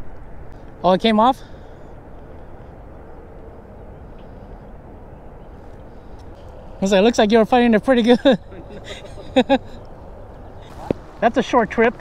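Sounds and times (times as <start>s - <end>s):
wind: 0.0s - 12.0s.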